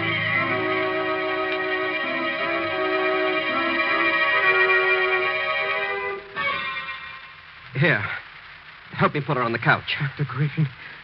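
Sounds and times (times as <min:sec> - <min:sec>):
organ music: 0:00.0 - 0:07.4.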